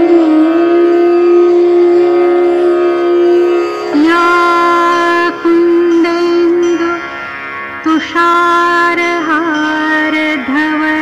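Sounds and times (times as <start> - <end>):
flute holding long note: 0.0 - 6.9.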